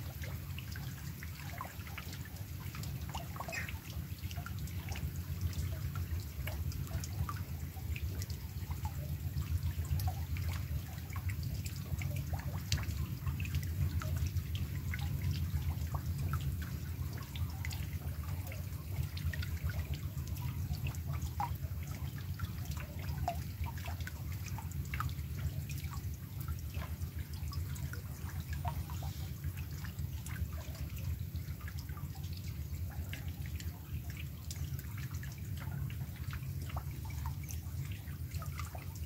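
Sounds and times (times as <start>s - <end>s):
rain drops on pond water: 0.0s - 39.0s
steady low rumble: 0.0s - 39.0s.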